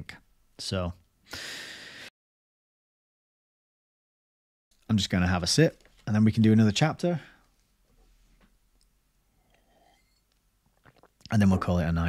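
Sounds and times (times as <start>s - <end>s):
man breathing into microphone: 1.3s - 2.1s.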